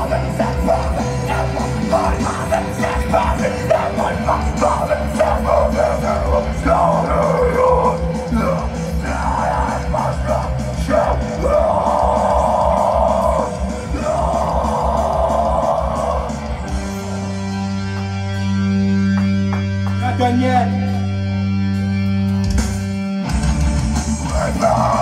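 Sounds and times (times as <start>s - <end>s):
screamed vocals: 0.0s - 16.6s, 24.2s - 25.0s
loud guitars and drums: 0.0s - 25.0s.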